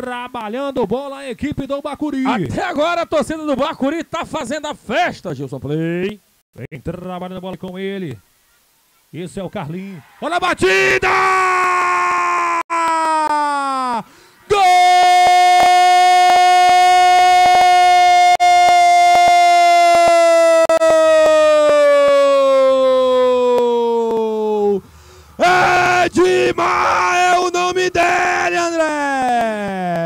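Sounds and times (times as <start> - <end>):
commentator shouting goal: 9.5 - 11.7, 25.4 - 30.0.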